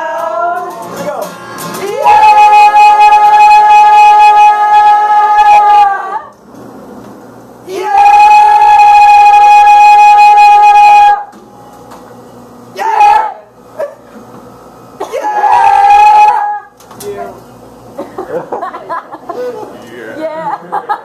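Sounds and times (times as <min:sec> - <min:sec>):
man belting high notes: 0:01.8 - 0:06.3, 0:07.7 - 0:11.3.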